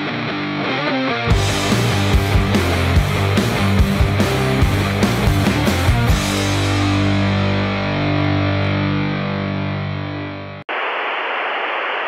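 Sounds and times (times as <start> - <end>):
distorted electric guitar chord: 1.3 - 10.3
tv static hiss: 10.7 - 12.0.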